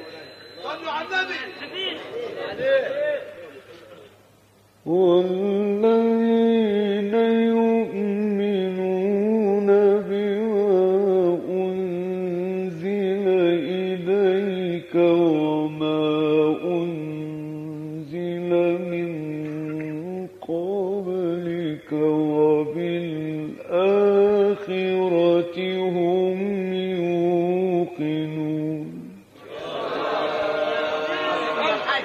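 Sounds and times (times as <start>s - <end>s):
man reciting melodically: 4.8s - 29.4s
crowd exclamations: 29.4s - 32.0s.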